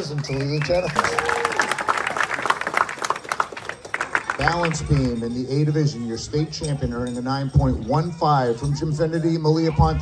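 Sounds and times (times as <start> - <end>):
audience applauding: 0.0 - 5.1.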